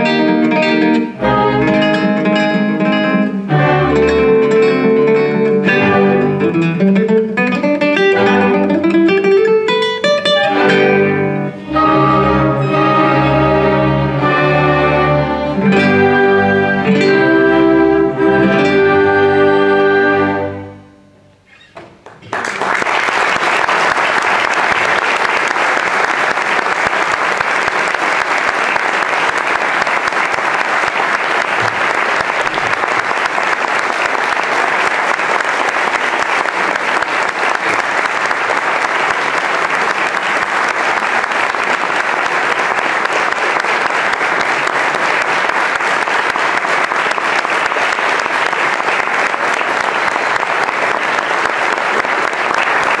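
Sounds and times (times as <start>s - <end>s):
orchestral music: 0.0s - 7.4s, 8.0s - 9.3s, 9.9s - 21.3s
audience applauding: 3.5s - 20.6s, 21.7s - 53.0s.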